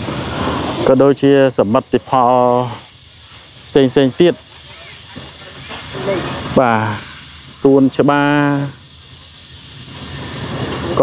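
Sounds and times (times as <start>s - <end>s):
steady hiss: 0.0s - 11.0s
man speaking: 0.9s - 2.8s, 3.7s - 5.0s, 6.0s - 8.8s.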